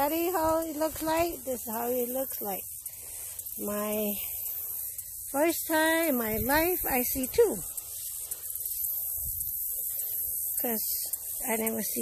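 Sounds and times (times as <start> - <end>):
faint high hiss: 0.0 - 12.0
wind rumble on microphone: 5.7 - 7.8, 9.1 - 9.8.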